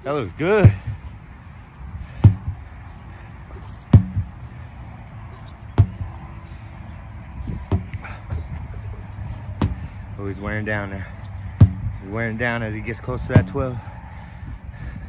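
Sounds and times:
sledgehammer striking a tire: 0.5s - 1.0s, 2.0s - 2.7s, 3.6s - 4.4s, 5.5s - 6.2s, 7.4s - 8.2s, 9.5s - 10.0s, 11.1s - 12.1s, 13.1s - 13.8s.

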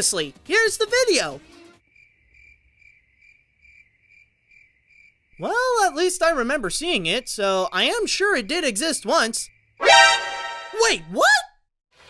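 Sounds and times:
crickets chirping: 1.8s - 9.8s.

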